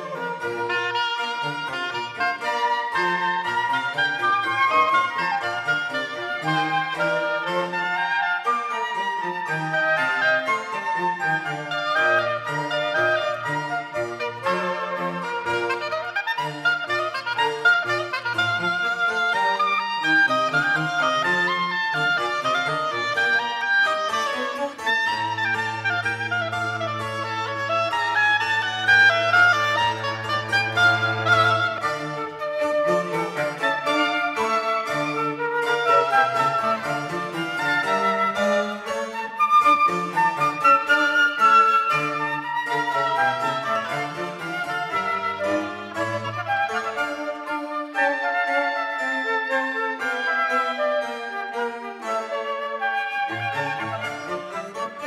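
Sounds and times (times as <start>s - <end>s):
cello: 0.0s - 55.0s
flute: 0.0s - 55.0s
harpsichord: 0.0s - 55.0s
violin: 0.0s - 55.0s.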